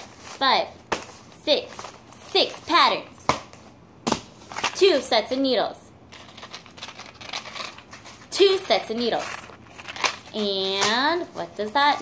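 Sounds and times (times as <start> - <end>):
paper and packaging crinkling: 6.1 - 12.0.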